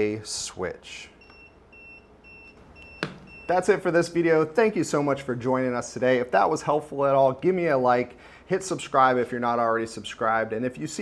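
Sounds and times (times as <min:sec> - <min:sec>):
faint high beeps: 0:01.1 - 0:03.8.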